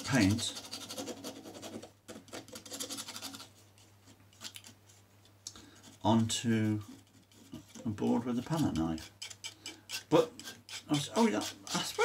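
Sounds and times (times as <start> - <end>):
palette knife scraping paint: 0.0 - 4.8, 5.8 - 12.0.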